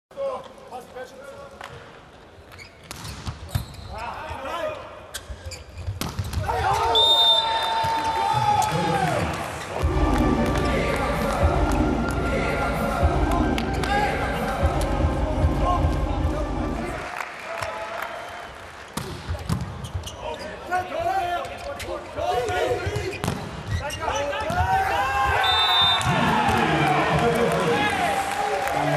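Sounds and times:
sneakers squeaking on court: 0:02.5 - 0:04.0, 0:05.1 - 0:06.5, 0:19.0 - 0:20.6
crowd noise: 0:06.4 - 0:28.9.

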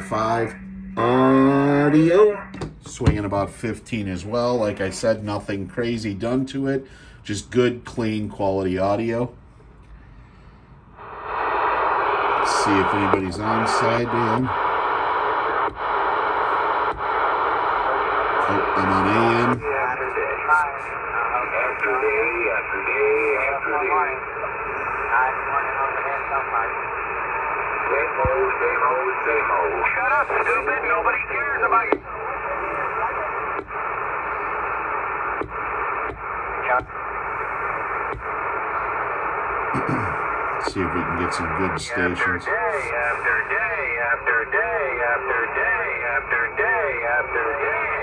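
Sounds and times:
garbled radio voice: 0:00.0 - 0:03.2, 0:12.4 - 0:14.7, 0:17.9 - 0:26.9, 0:27.8 - 0:34.1, 0:39.6 - 0:48.0
radio static hiss: 0:00.0 - 0:09.4, 0:11.0 - 0:48.0.

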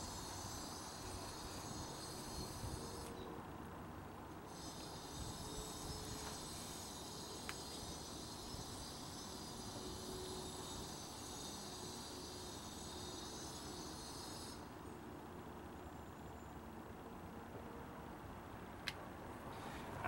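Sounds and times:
high-pitched insect buzz: 0:00.0 - 0:03.2, 0:04.5 - 0:14.7.

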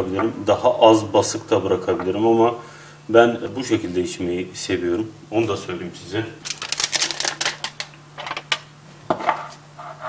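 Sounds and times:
aluminium foil crinkling and tearing: 0:06.4 - 0:08.0.

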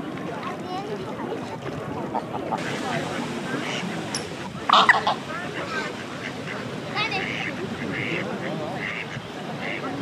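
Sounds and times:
people chattering: 0:00.0 - 0:10.0
ducks quacking: 0:02.2 - 0:10.0.

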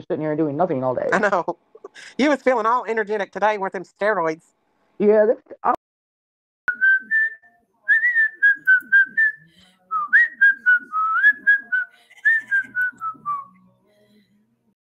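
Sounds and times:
person whistling a tune: 0:06.7 - 0:13.6.

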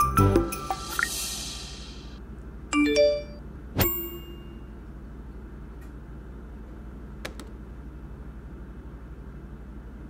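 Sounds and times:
bright notification ding: 0:02.8 - 0:04.7.

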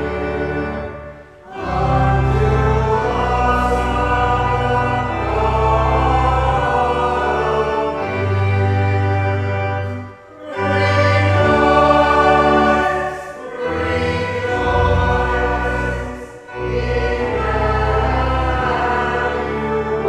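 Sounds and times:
congregation singing a hymn: 0:00.0 - 0:20.0
organ chords: 0:00.0 - 0:20.0.

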